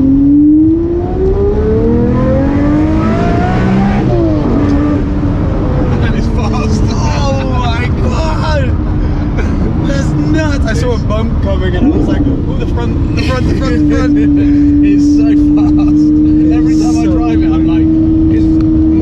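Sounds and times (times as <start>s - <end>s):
car engine accelerating hard: 0.0s - 19.0s
people laughing: 9.2s - 10.2s, 13.0s - 17.0s.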